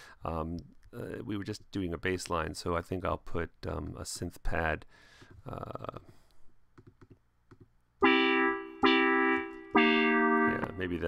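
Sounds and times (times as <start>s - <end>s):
synthesizer chord: 8.0s - 10.9s.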